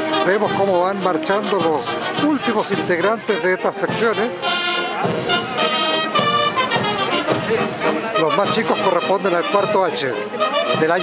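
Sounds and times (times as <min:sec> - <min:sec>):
brass band playing a march: 0:00.0 - 0:11.0.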